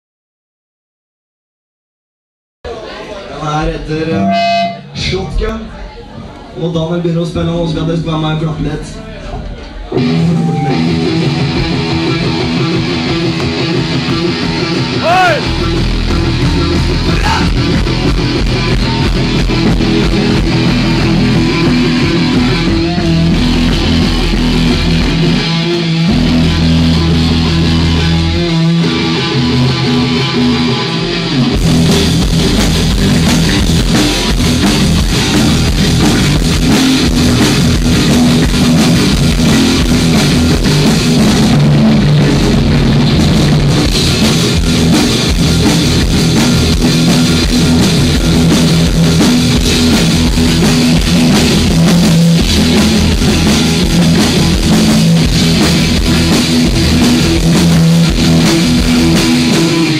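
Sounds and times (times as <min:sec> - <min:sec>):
cymbals: 0:04.1 - 0:05.1
electric guitar: 0:04.1 - 0:05.1, 0:09.7 - 0:59.9
drum kit: 0:09.3 - 0:59.9.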